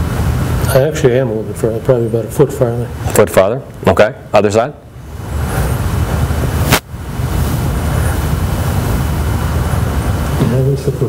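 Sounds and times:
low rumbling microphone noise: 0.0 - 11.0.

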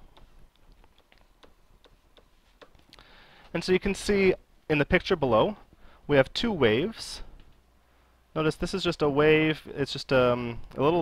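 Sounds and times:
stylus clicking on tablet screen: 0.0 - 2.9.

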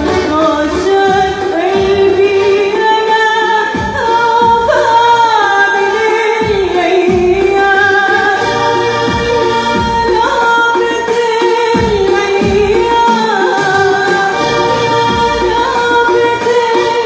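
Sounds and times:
woman singing into a microphone: 0.0 - 17.0.

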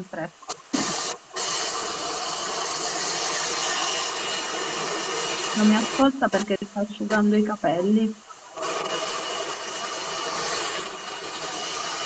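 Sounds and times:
hair dryer blowing: 0.7 - 6.5, 8.5 - 12.0.

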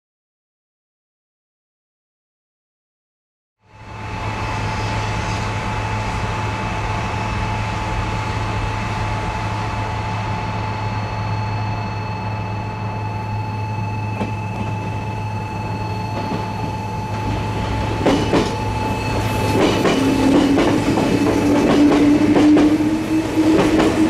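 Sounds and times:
electric train rumbling with whine: 3.6 - 24.0.

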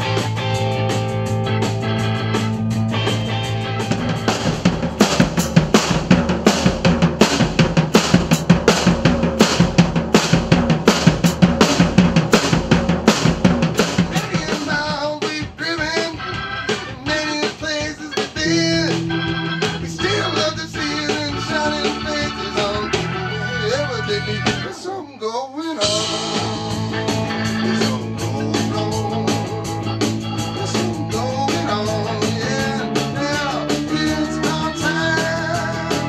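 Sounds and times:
drum kit rapid hits: 0.0 - 24.7, 25.8 - 36.0
blues band playing live: 0.0 - 25.0, 25.8 - 36.0
electric guitar lead with bending notes: 0.0 - 25.0, 25.8 - 36.0.

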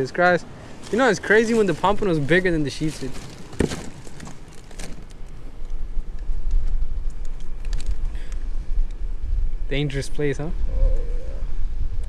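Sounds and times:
wind rumbling on microphone: 0.0 - 12.0
fish set down on ice: 3.0 - 5.2.

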